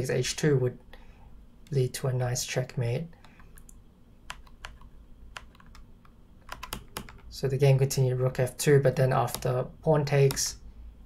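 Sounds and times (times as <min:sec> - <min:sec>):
computer mouse clicks: 0:03.2 - 0:07.3, 0:09.3 - 0:09.5.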